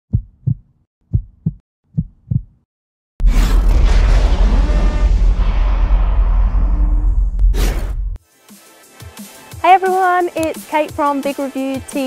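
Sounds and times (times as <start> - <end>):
heartbeat thumps: 0.1 - 2.6.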